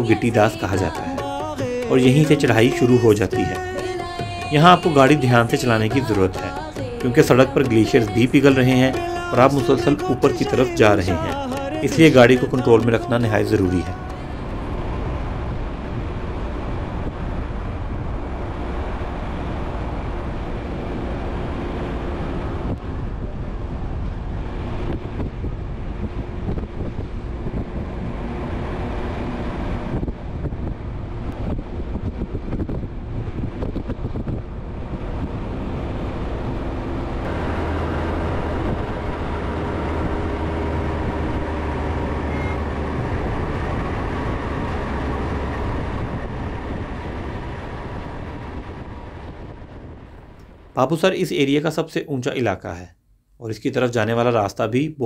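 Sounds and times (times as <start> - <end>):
car engine hum: 0.0 - 50.8
tyre and road noise: 0.0 - 50.8
deep rumble: 13.9 - 50.8.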